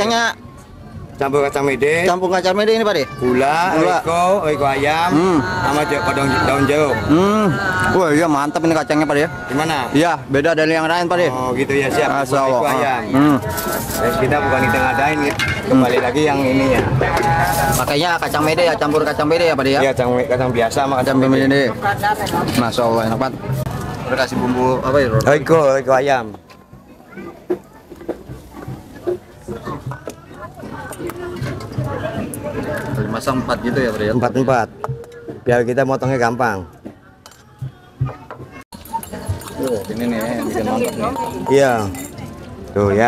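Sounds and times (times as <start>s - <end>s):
people talking: 0.0s - 35.4s, 37.0s - 43.0s
background chatter of voices: 0.0s - 43.0s.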